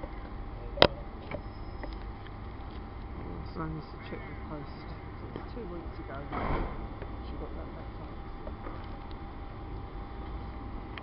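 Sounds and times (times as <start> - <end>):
electric train humming: 0.0 - 11.0.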